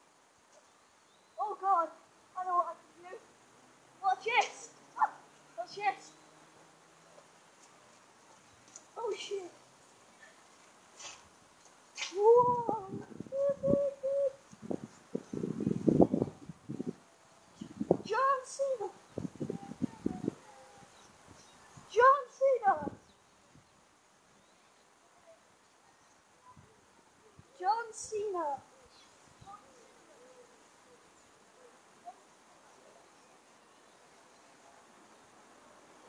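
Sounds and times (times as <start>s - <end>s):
faint outdoor background: 0.0s - 36.0s.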